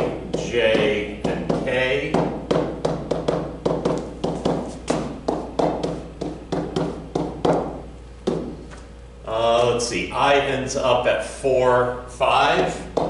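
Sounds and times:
stylus tapping on whiteboard: 0.0s - 8.8s.

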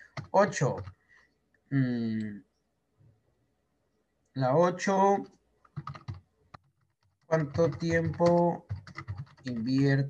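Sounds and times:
computer keyboard typing: 0.0s - 1.0s, 5.6s - 10.0s.

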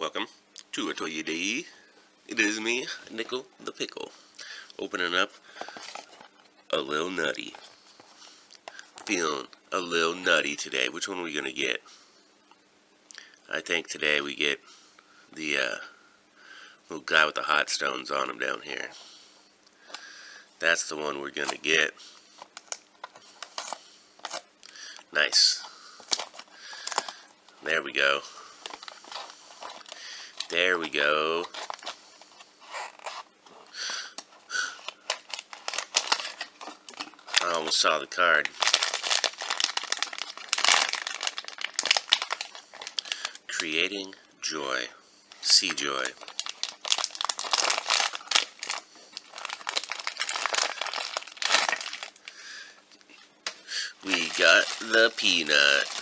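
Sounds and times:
plastic pouch crinkling: 22.4s - 24.5s, 25.6s - 27.3s, 28.0s - 33.3s, 33.9s - 43.6s, 45.4s - 52.4s, 53.1s - 56.0s.

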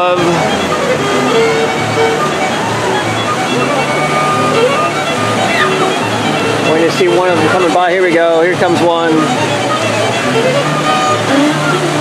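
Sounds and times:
music of held notes: 0.0s - 12.0s
whitewater rushing: 0.0s - 12.0s.

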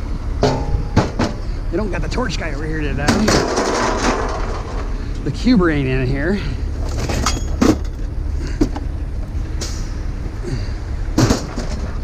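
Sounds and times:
low vehicle rumble: 0.0s - 12.0s
sharp bang: 0.4s - 1.4s
dense rattling clatter: 0.4s - 5.1s, 6.7s - 8.8s.

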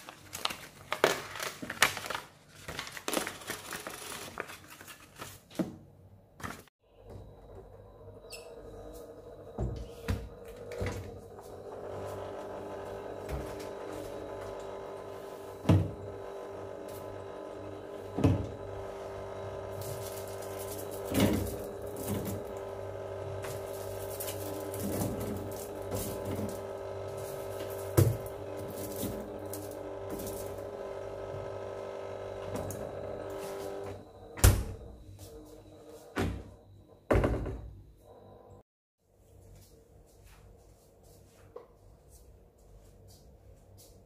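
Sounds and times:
steady fridge hum: 5.8s - 44.0s.

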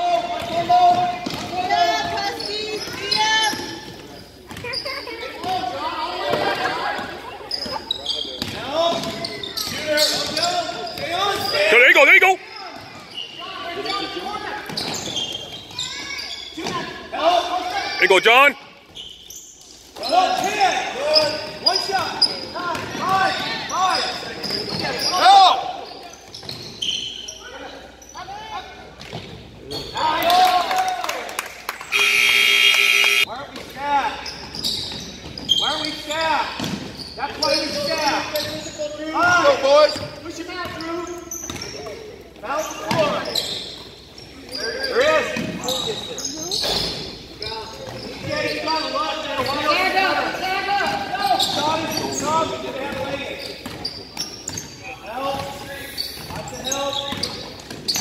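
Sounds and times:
voices in echoing hall: 0.0s - 58.0s.

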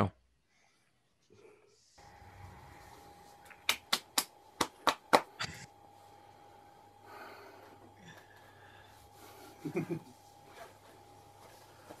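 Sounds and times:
faint steady hum: 0.2s - 12.0s
sharp slaps: 3.5s - 5.4s.

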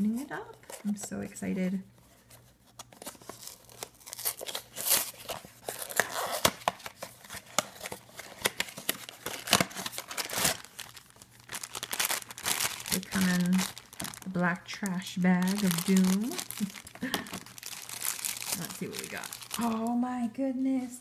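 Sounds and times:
plastic bag crinkling: 2.9s - 20.1s
cardboard box tearing: 3.0s - 11.0s.

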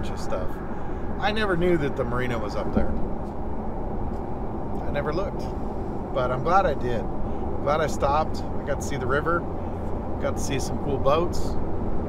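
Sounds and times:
road and engine noise in truck cab: 0.0s - 12.0s.

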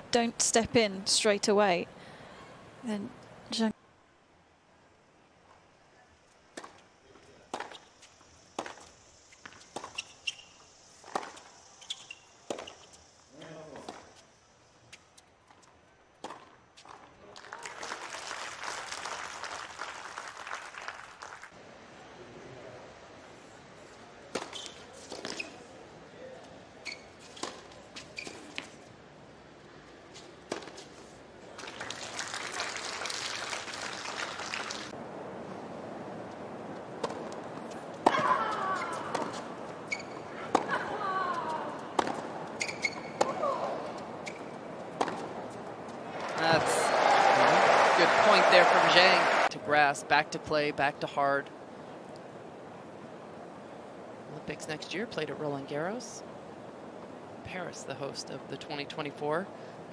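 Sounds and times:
crowd applause and cheering: 17.4s - 21.5s, 31.6s - 35.0s, 46.1s - 49.5s
rackets hitting tennis ball: 36.9s - 46.8s.

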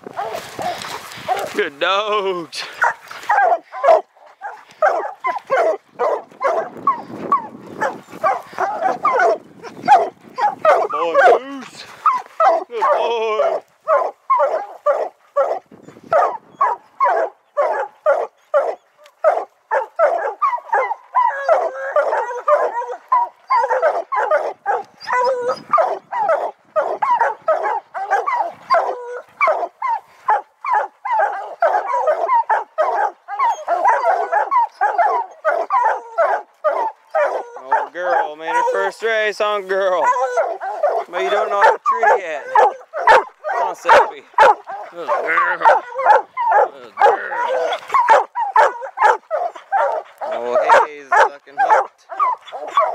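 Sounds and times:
hounds barking and bawling: 0.0s - 52.9s.

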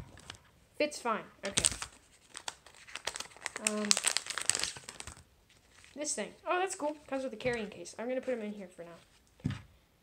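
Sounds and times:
plastic packaging crinkling: 1.4s - 6.0s.

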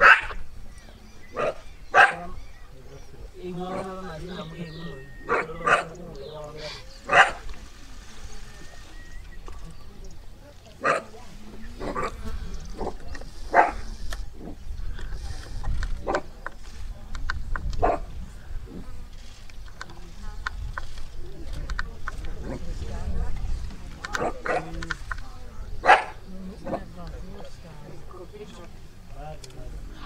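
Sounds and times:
cheetah cubs snarling and hissing: 11.7s - 16.3s.

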